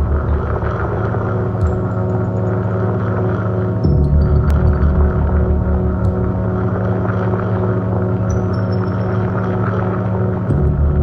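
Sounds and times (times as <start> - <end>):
pulsing synth bass: 0.0 - 11.0
synthesizer drone: 0.0 - 11.0.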